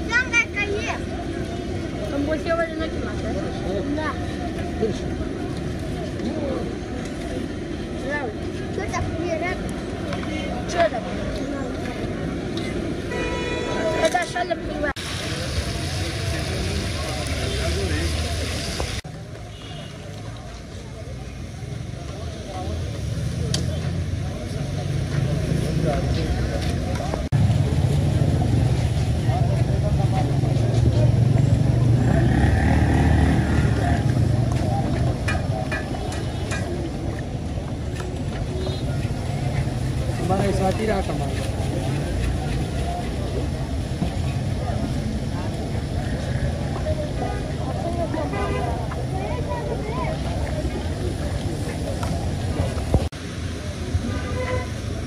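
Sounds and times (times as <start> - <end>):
people talking: 0.0 - 55.0
traffic rumble: 0.0 - 55.0.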